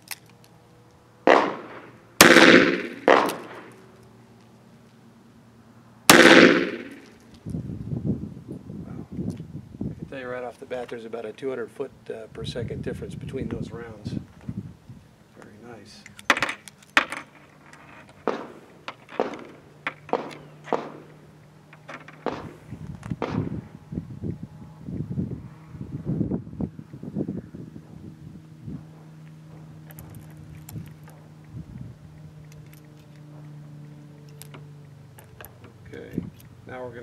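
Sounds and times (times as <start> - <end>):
steady low hum: 0.0 - 37.0
sharp revolver clicks: 1.3 - 3.8, 20.1 - 21.1.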